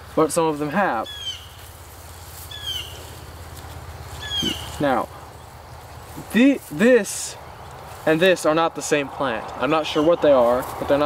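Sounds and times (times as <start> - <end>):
bird chirping: 0.9 - 8.5.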